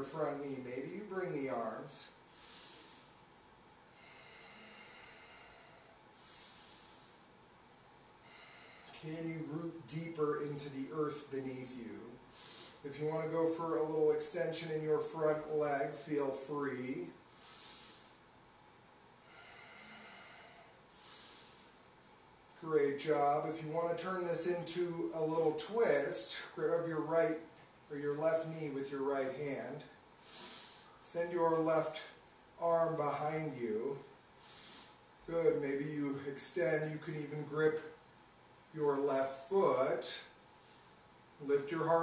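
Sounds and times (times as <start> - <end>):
man breathing softly: 2.0 - 7.5, 8.2 - 9.1, 12.2 - 12.9, 17.2 - 18.4, 19.2 - 22.1, 30.2 - 31.1, 34.3 - 35.3, 40.3 - 41.4.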